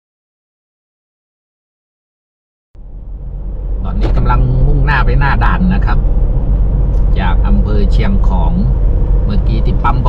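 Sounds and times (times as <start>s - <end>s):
car driving rumble: 2.8s - 10.0s
person talking: 3.8s - 6.0s, 7.0s - 10.0s.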